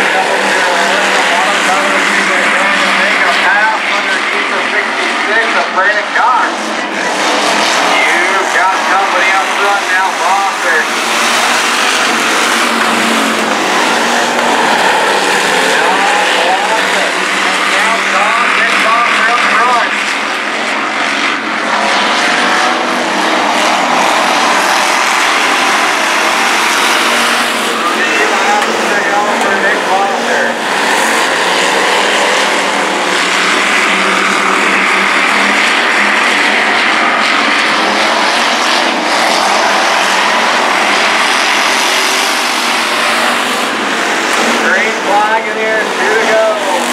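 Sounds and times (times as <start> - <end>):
race car engines: 0.0 - 46.9.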